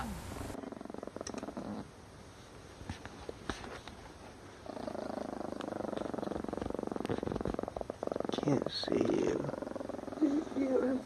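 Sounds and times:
small dog growling: 0:00.0 - 0:01.9, 0:04.6 - 0:11.0.

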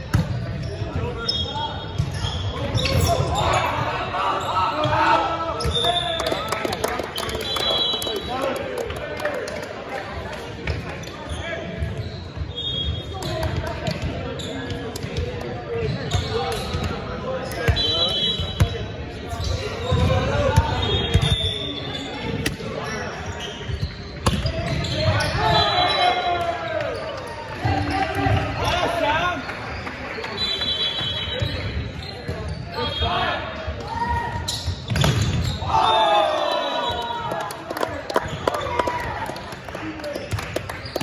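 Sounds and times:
players' voices echoing: 0:00.0 - 0:41.0
sneakers squeaking on hardwood: 0:00.6 - 0:04.9, 0:19.3 - 0:26.2, 0:31.2 - 0:33.0, 0:33.9 - 0:35.7.

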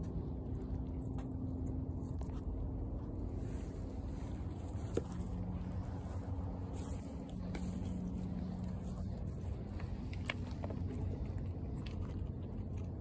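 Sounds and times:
goats crunching pellets: 0:00.0 - 0:13.0
low rumble with hum: 0:00.0 - 0:13.0.

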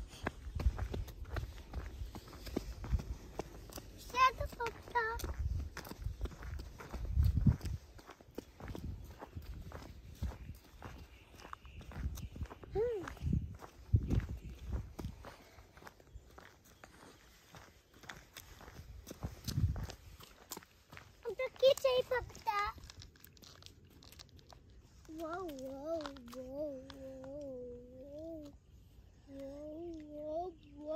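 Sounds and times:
footsteps on paved path: 0:00.0 - 0:30.8.

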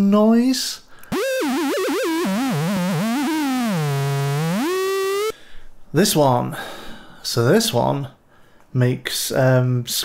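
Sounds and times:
screechy buzzy synth drone: 0:01.1 - 0:05.3.

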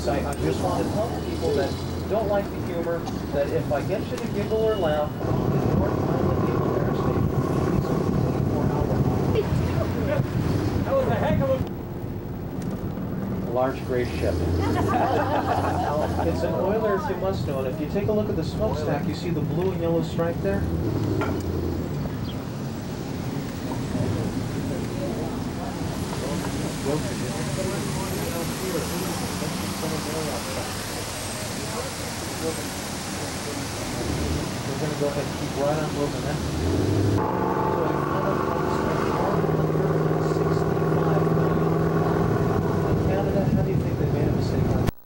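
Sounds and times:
road noise: 0:00.0 - 0:45.0
vehicle engine rumble: 0:00.0 - 0:45.0.

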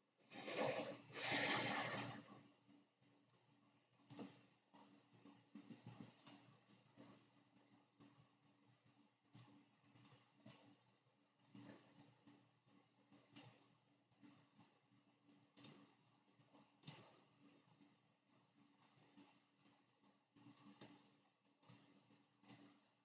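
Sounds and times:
faint irregular clicks: 0:00.5 - 0:23.0.

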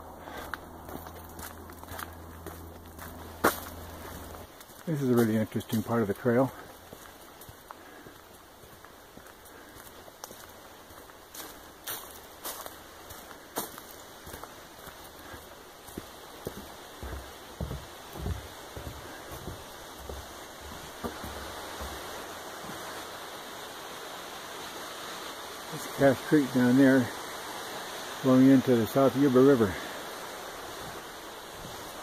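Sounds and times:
footsteps on a trail: 0:00.0 - 0:23.3, 0:28.9 - 0:32.0
creek water rushing: 0:00.0 - 0:32.0.

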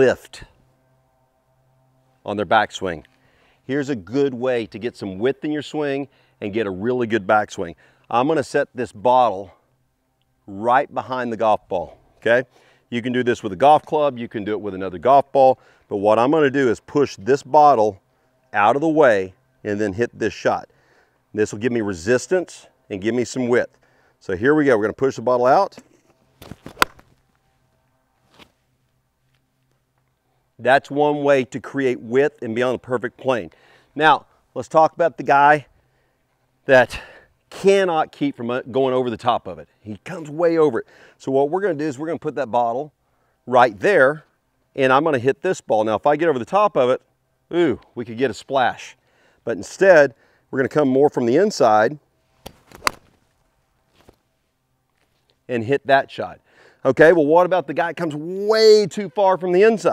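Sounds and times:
golf club striking ball: 0:26.4 - 0:27.1, 0:52.4 - 0:53.1
club brushing turf: 0:28.3 - 0:28.6.

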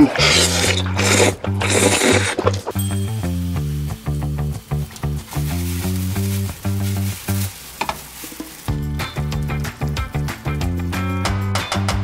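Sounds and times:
low note-by-note melody: 0:02.7 - 0:07.3
noodles sizzling in frying pan: 0:02.8 - 0:10.3.

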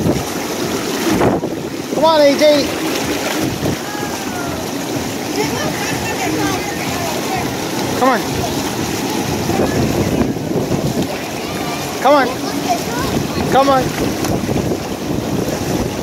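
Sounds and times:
pool water rushing and churning: 0:00.0 - 0:16.0.

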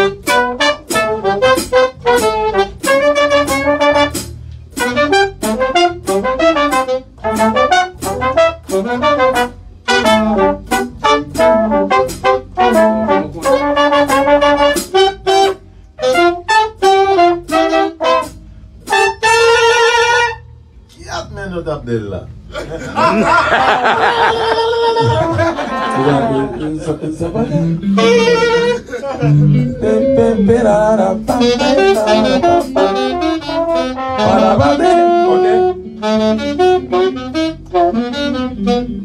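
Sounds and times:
horn section playing a riff: 0:00.0 - 0:20.7, 0:23.0 - 0:39.0.

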